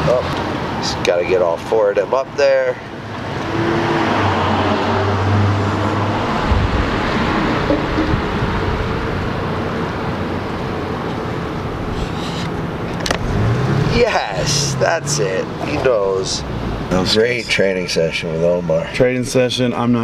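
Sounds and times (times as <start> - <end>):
passing vehicles rushing: 0.0 - 19.2
low engine hum: 4.1 - 17.4.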